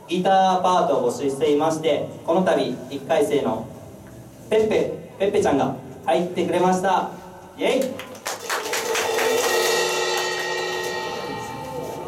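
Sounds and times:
cymbal crash ringing: 8.5 - 12.0
rock band chord: 8.9 - 12.0.

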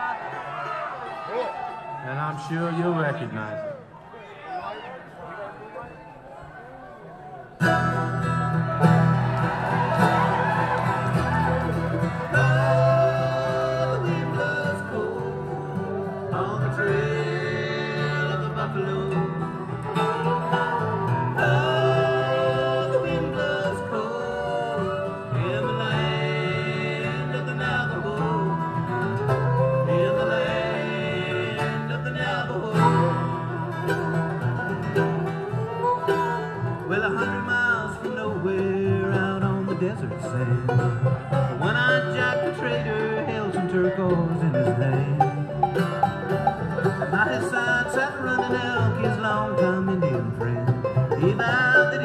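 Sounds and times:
acoustic guitar: 7.4 - 52.0
mandolin: 7.6 - 52.0
upright bass: 7.6 - 52.0.

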